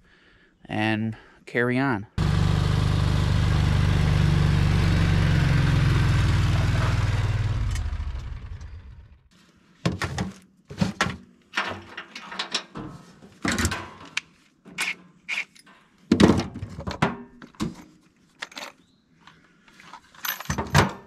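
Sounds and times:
utility vehicle engine running: 2.2s - 9.3s.

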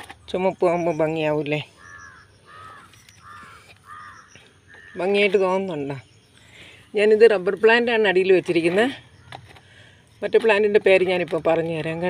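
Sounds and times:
crow cawing: 1.8s - 5.0s.

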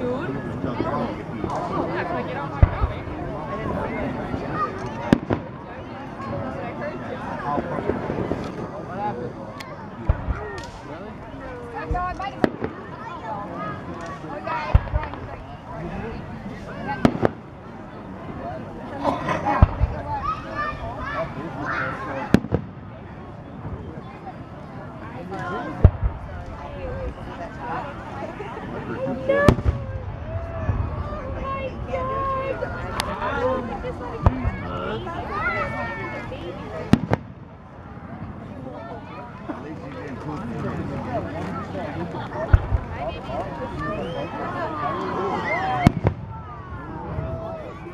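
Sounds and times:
firework bang: 5.0s - 5.6s, 17.0s - 17.4s, 22.2s - 22.9s, 29.4s - 32.0s, 36.9s - 37.5s, 45.8s - 46.8s.

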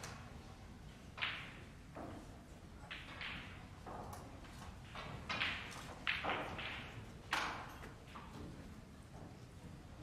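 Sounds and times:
snooker balls soft knocks: 0.0s - 9.4s.

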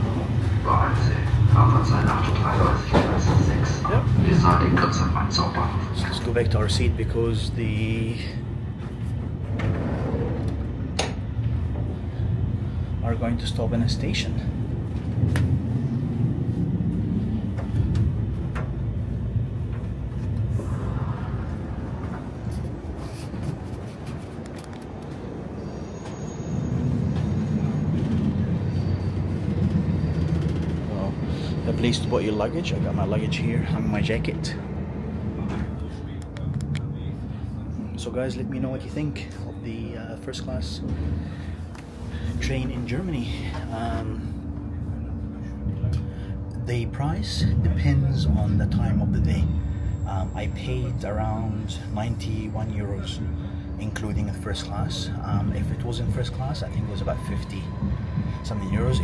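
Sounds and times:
low rumble inside train carriage: 0.0s - 59.0s.

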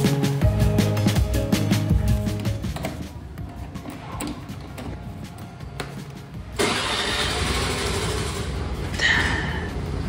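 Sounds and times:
scooter engine starting and running: 6.5s - 8.8s.

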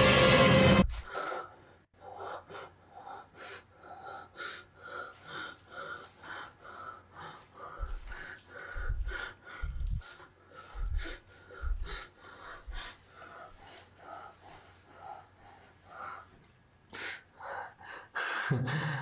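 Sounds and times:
rapid heavy breathing: 0.8s - 19.0s.

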